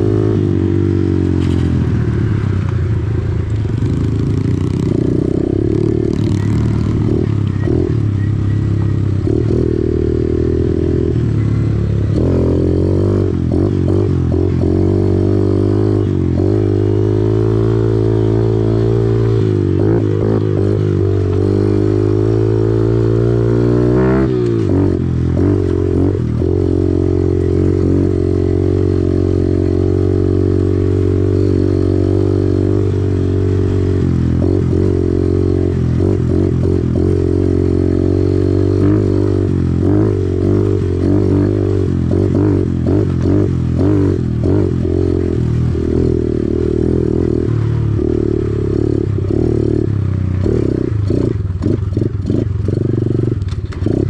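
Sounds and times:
pit bike engine revving: 3.7 - 54.0.

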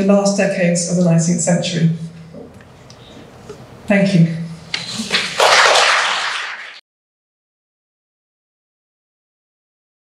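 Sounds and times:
audience applause: 5.1 - 6.8.

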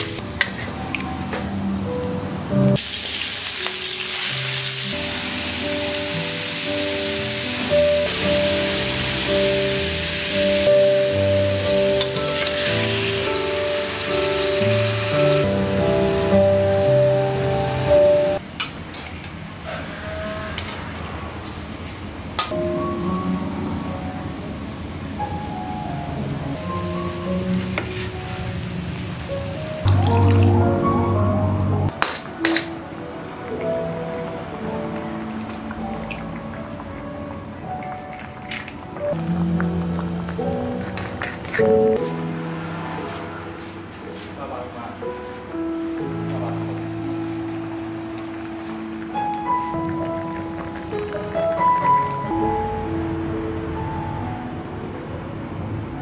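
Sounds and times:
background music: 0.0 - 18.4, 22.5 - 56.0
food sizzling in a wok: 2.8 - 18.4, 26.6 - 29.9.

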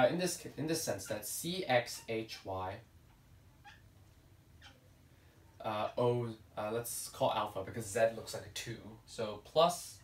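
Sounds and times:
marker squeaking on whiteboard: 3.6 - 3.9, 4.6 - 4.8.

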